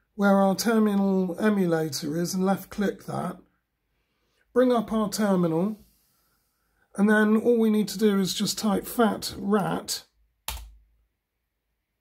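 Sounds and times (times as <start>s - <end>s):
laptop keystroke: 10.5s - 10.8s.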